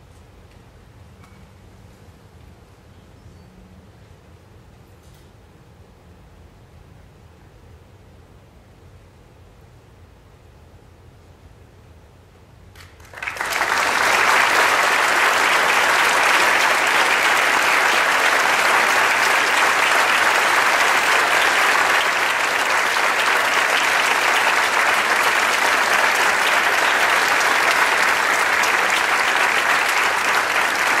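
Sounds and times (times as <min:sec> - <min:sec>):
audience applause: 0:12.8 - 0:31.0.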